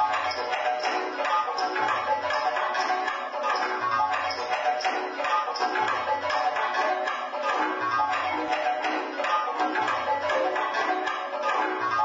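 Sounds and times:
experimental electroacoustic music: 0.0 - 12.0.

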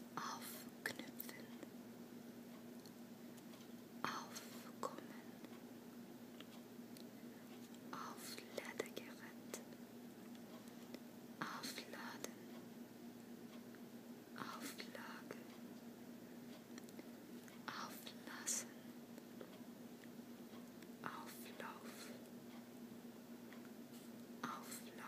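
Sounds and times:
faint steady hum: 0.0 - 25.0
person whispering: 0.2 - 1.6, 4.0 - 5.4, 7.9 - 9.7, 11.4 - 12.4, 14.4 - 15.5, 17.6 - 18.8, 21.0 - 22.2, 24.4 - 25.0.

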